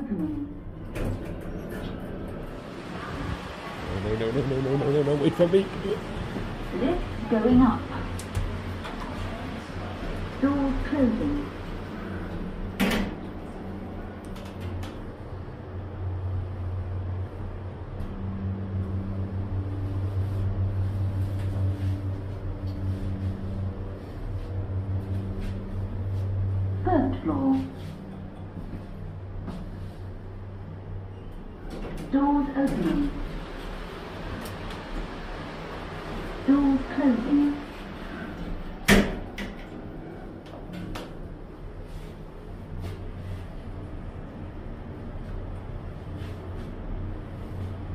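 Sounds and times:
lift doors sliding shut: 0:00.8 - 0:04.0.

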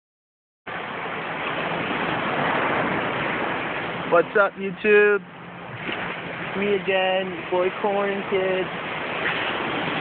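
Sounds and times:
surf: 0:00.7 - 0:10.0
wind: 0:00.7 - 0:10.0.

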